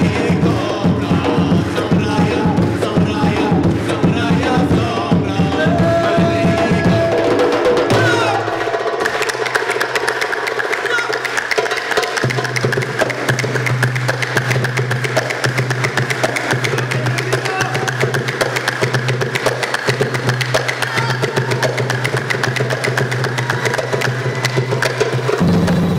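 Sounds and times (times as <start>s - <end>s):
fast percussion strokes: 0.0s - 25.9s.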